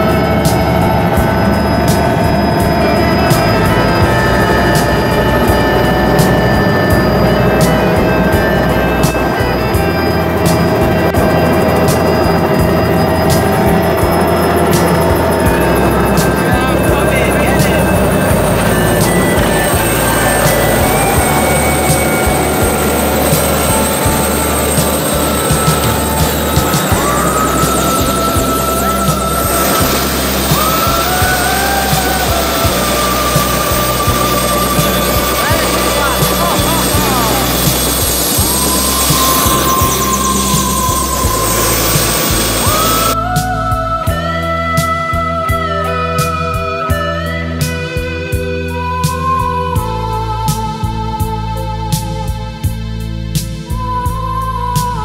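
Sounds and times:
background music: 0.0 - 55.0
helicopter turbine and rotor: 0.0 - 55.0.

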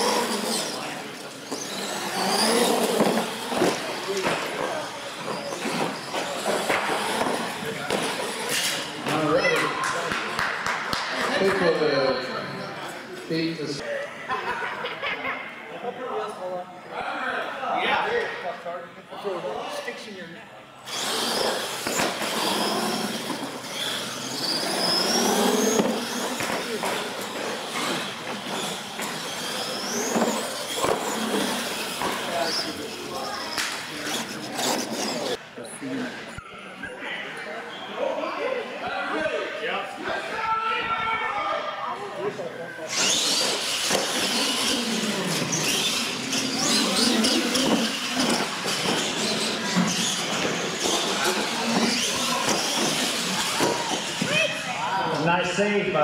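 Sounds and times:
toy truck motors whining: 0.0 - 8.9, 20.8 - 35.4, 42.8 - 54.7
onlookers' voices: 0.0 - 56.0.

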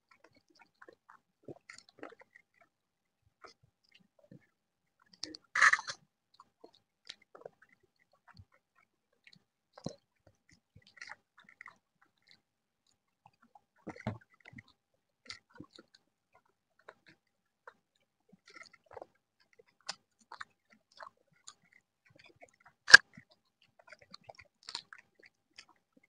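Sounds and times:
people chewing: 5.6 - 6.0.

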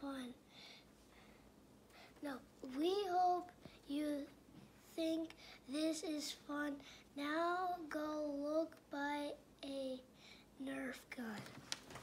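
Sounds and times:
boy reading aloud: 0.0 - 0.4, 2.1 - 12.0.

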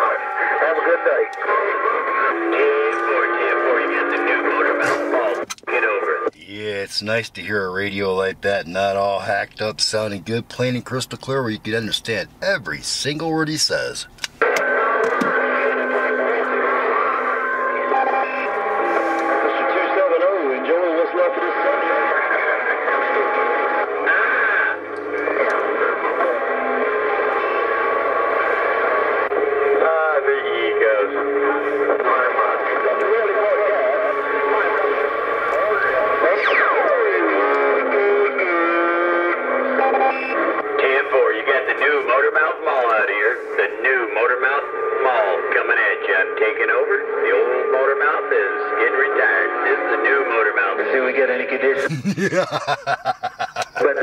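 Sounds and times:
garbled radio voices: 0.0 - 39.0, 39.8 - 54.0.

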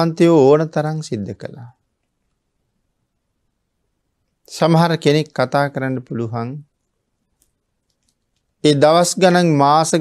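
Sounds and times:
man speaking: 0.0 - 1.8, 4.5 - 6.8, 8.6 - 10.0.

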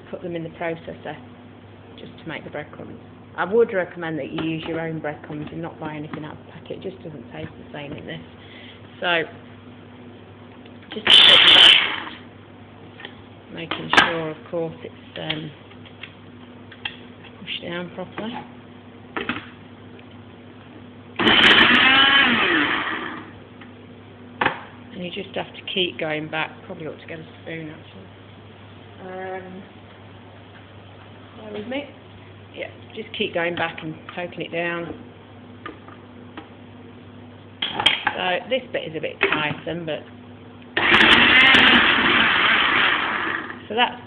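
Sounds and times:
food processor grinding: 11.0 - 12.2, 21.2 - 23.3, 40.8 - 43.7.

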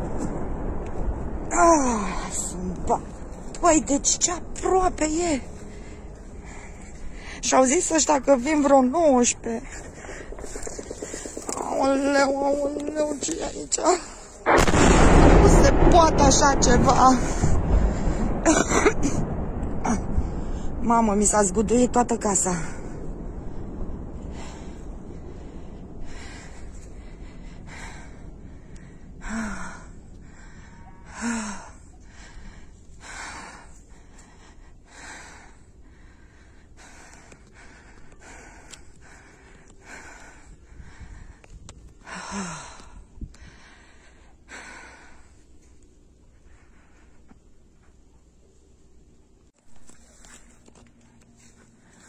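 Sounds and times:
explosion boom: 0.0 - 7.1, 9.4 - 32.6
deep rumble: 0.0 - 52.0
person breathing heavily: 24.2 - 45.6.

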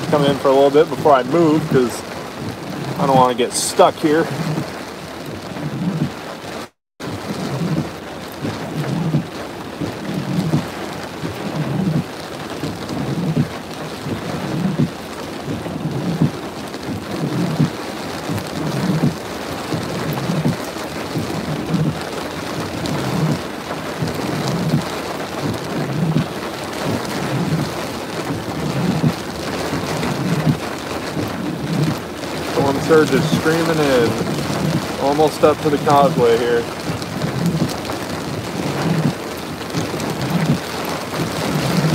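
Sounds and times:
rain and spray lashing truck: 0.0 - 41.9.

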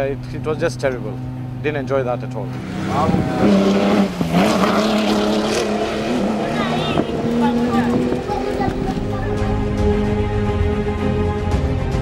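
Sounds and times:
rally car engine running hard: 0.2 - 11.0
voices: 6.2 - 9.8.

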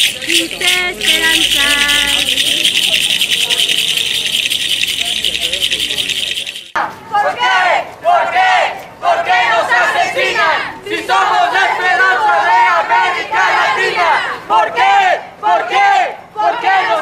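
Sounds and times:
rattles shaken in fast rhythm: 0.0 - 6.8
crowd chanting slogans: 6.8 - 17.0.

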